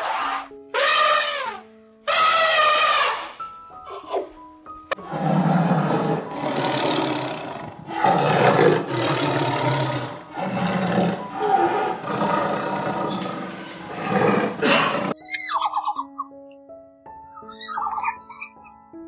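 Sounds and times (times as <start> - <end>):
tiger roaring: 5.0 - 15.2.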